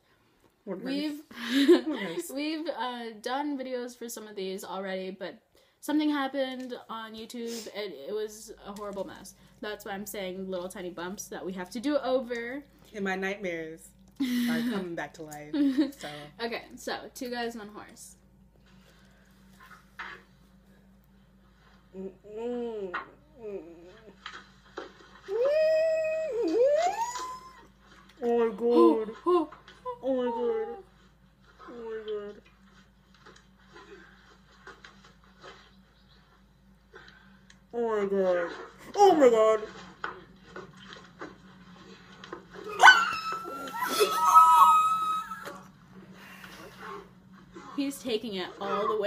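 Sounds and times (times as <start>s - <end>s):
person's whining vocal cry: 25.3s - 27.6s, 42.7s - 45.6s
woman squealing: 25.3s - 27.7s, 42.7s - 45.7s.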